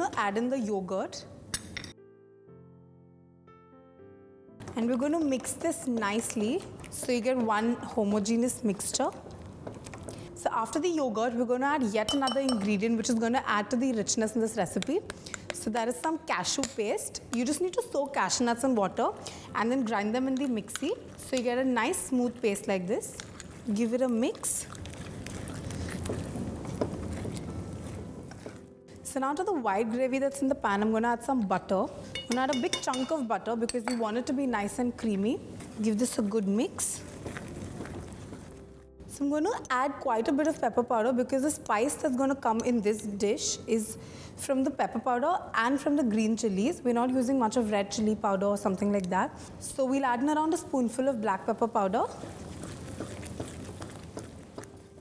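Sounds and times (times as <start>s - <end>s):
spatula stirring thick gravy: 19.9s - 28.7s, 37.0s - 38.6s, 51.6s - 55.0s
spatula stirring gravy in pan: 37.1s - 38.6s, 51.7s - 55.0s.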